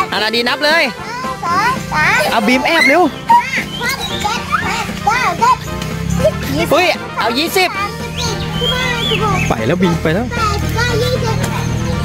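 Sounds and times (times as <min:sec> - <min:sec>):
background music: 0:00.0 - 0:12.0
children's voices: 0:00.6 - 0:12.0.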